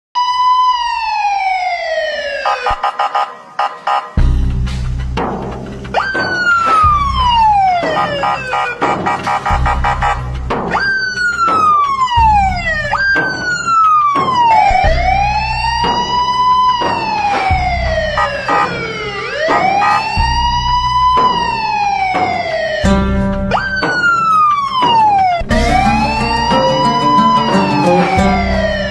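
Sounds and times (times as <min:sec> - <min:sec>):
ambulance siren: 0:00.2 - 0:04.3, 0:05.9 - 0:28.9.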